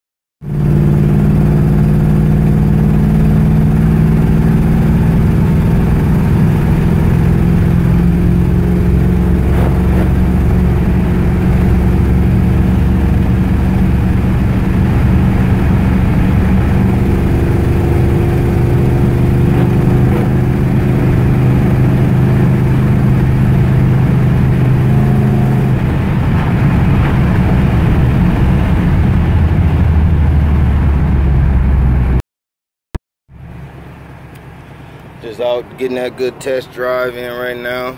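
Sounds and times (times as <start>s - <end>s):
car engine running: 0.4s - 32.2s, 33.3s - 37.9s
road noise: 0.4s - 32.2s, 33.3s - 37.9s.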